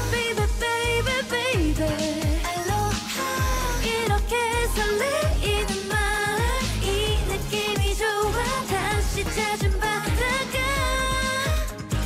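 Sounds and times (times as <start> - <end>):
pop backing track: 0.0 - 12.0
woman singing: 0.0 - 12.0.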